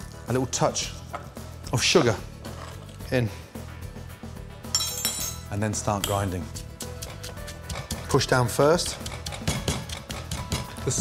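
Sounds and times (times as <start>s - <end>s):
background music: 0.0s - 11.0s
metal utensil clinking on mortar: 4.7s - 6.4s.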